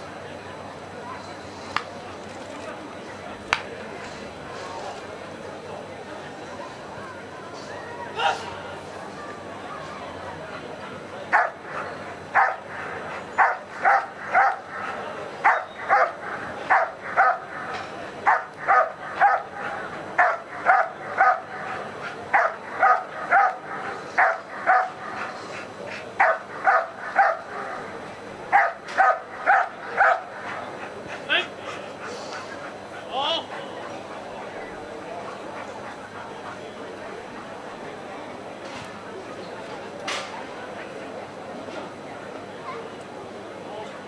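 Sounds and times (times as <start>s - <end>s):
dog barking sharply: 12.4s - 12.6s, 13.4s - 14.6s.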